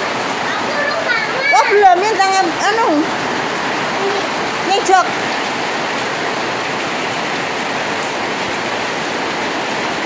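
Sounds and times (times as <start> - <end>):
heavy rain: 0.0 - 10.0.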